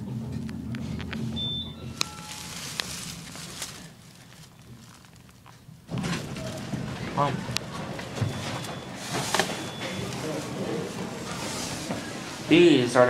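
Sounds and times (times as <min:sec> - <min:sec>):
elevator hum: 0:00.0 - 0:13.0
short high beep: 0:01.4 - 0:02.6.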